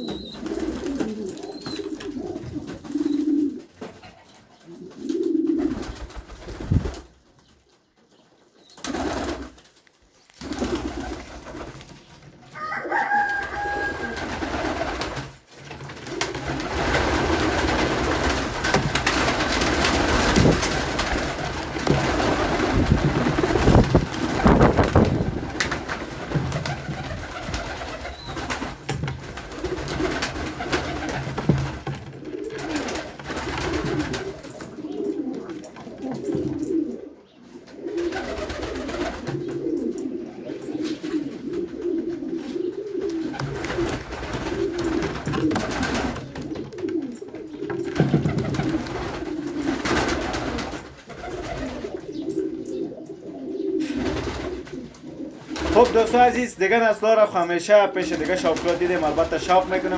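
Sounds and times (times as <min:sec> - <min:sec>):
pigeons cooing: 0:00.0 - 0:06.3, 0:10.3 - 0:59.9.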